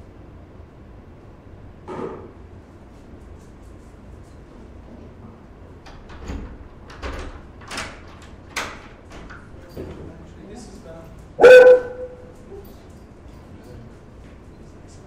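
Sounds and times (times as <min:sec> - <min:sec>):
door opening and shutting: 0:05.9 - 0:09.4.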